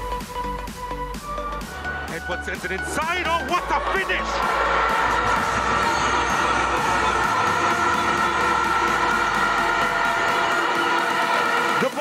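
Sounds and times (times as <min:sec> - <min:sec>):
electronic background music: 0:00.0 - 0:12.0
stadium crowd cheering: 0:01.6 - 0:12.0.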